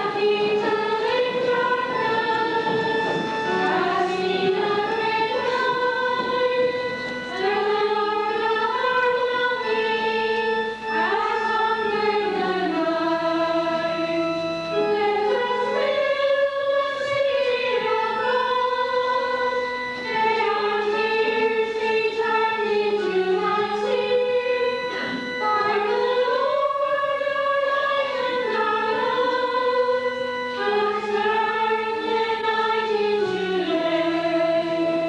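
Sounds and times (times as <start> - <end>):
choir singing a hymn: 0.0 - 35.0.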